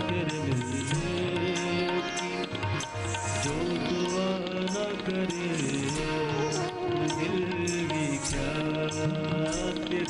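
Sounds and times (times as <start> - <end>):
harmonium: 0.0 - 10.0
man singing ornamented vocal line: 0.0 - 10.0
tabla: 0.0 - 10.0.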